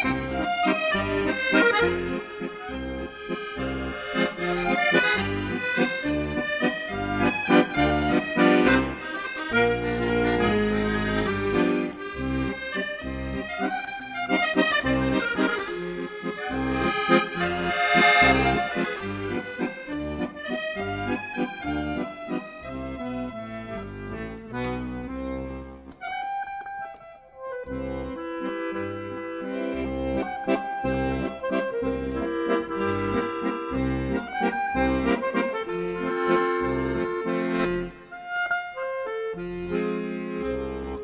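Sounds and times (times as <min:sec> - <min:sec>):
accordion playing folk tune: 0:00.0 - 0:41.0.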